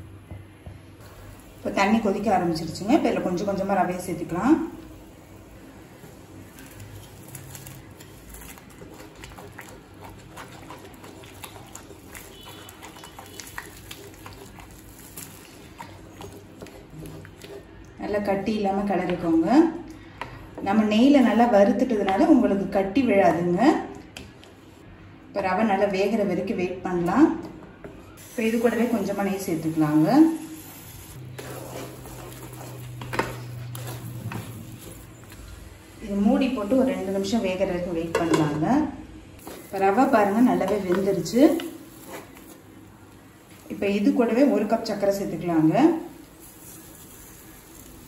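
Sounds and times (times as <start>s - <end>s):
water boiling and bubbling: 1.2s - 18.5s, 28.2s - 37.6s, 39.2s - 48.0s
spatula scraping thick mixture: 7.9s - 17.8s, 31.3s - 35.0s.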